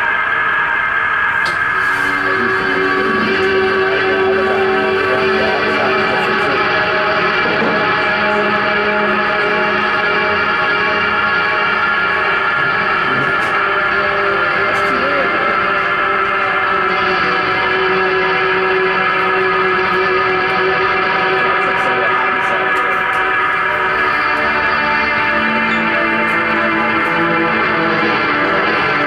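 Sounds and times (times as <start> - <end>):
electronic guitar drone: 0.0 - 29.0.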